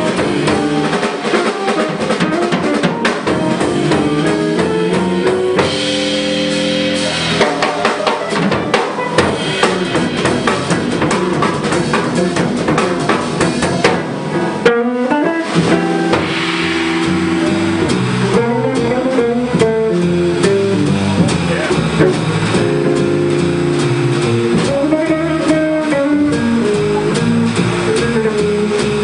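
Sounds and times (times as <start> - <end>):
drum kit: 0.0 - 29.0
electric guitar melodic lines: 0.0 - 29.0
upright bass: 0.0 - 29.0.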